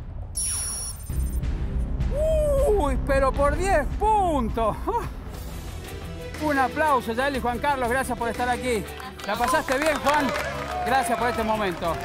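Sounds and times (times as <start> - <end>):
high ringing tone: 0.4 - 1.4.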